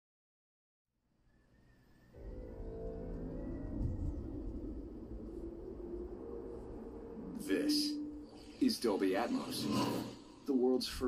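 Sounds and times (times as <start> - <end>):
deep rumble with low tones: 2.2 - 11.0.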